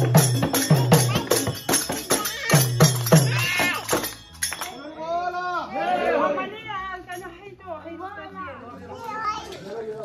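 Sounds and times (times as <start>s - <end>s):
adults and children talking: 0.0s - 10.0s.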